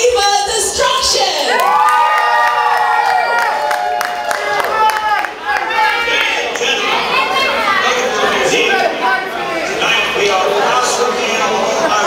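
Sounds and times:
audience cheering and screaming: 1.5s - 6.4s.

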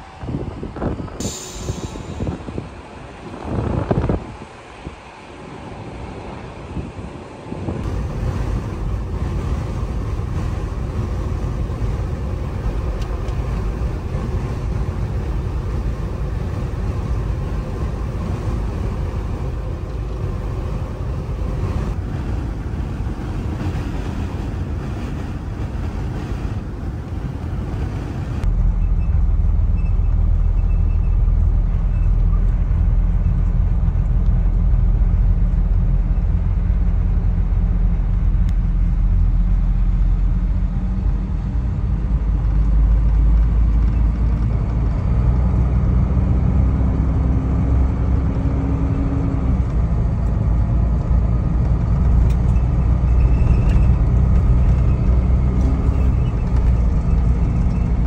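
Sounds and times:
road rumble: 0.0s - 58.0s
truck engine drone: 0.0s - 58.0s.

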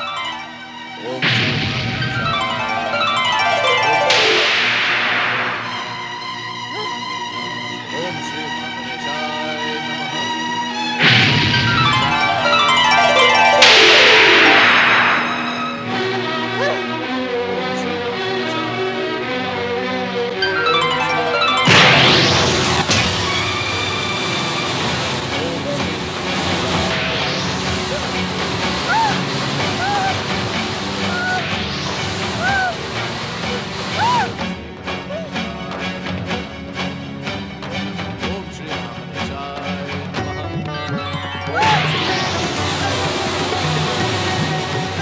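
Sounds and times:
magical power sound effect: 0.0s - 6.6s, 11.0s - 16.8s, 20.4s - 34.6s, 41.4s - 45.0s
dramatic background music: 0.0s - 45.0s
sustained rushing noise: 20.4s - 35.1s.

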